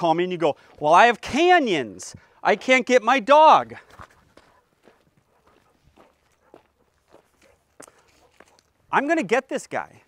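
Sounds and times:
footsteps on hard ground: 0.0 - 8.9.

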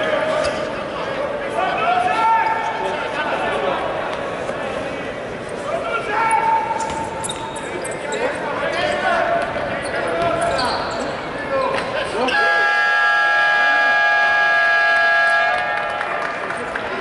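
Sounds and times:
sneakers squeaking on court: 6.8 - 12.0.

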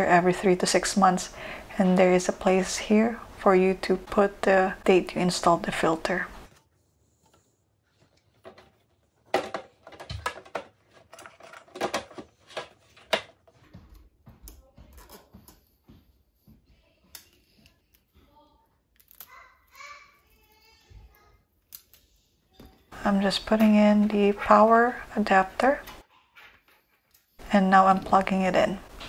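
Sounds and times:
plastic parts clicking and knocking: 8.1 - 13.6.

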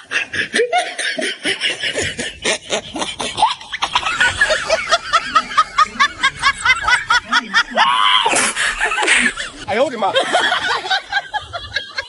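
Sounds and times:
high-pitched snickering laughter: 0.0 - 9.7.

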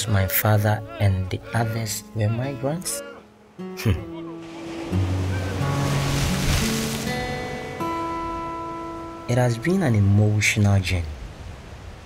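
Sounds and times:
surf washing against rocks: 4.4 - 12.0.

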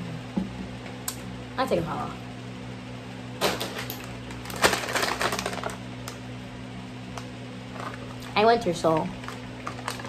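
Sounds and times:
plastic wipes pack crinkling: 4.3 - 5.8, 9.1 - 10.0.

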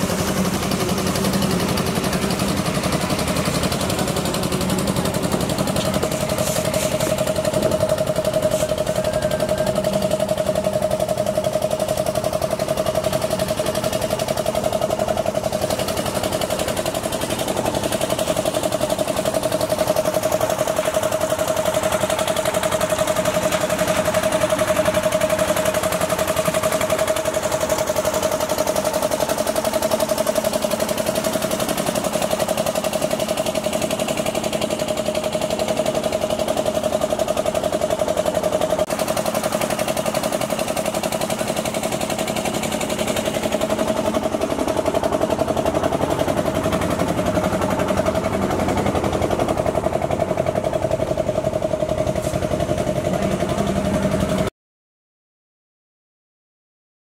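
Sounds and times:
concrete mixer engine humming: 0.0 - 54.5.

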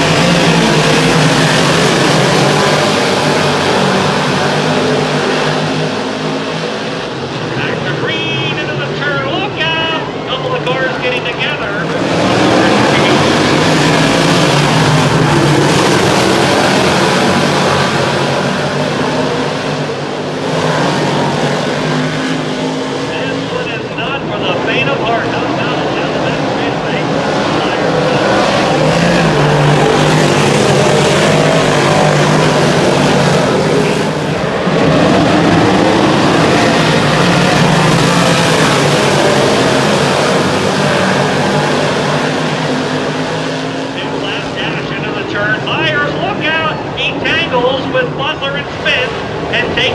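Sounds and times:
racing car engines roaring: 0.0 - 49.9.

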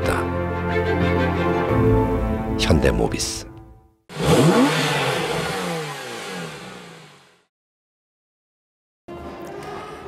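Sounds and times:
car engine revving: 4.1 - 7.5.

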